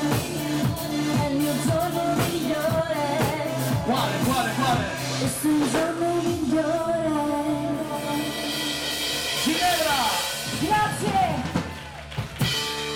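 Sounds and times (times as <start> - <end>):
ballroom dance band playing: 0.0 - 12.9.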